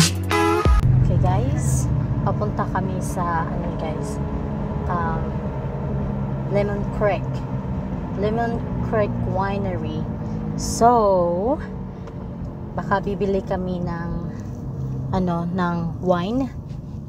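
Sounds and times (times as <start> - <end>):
car driving rumble: 0.0 - 17.0
woman talking: 1.0 - 4.2, 4.8 - 5.4, 6.4 - 7.4, 8.1 - 11.7, 12.8 - 14.5, 15.1 - 16.6.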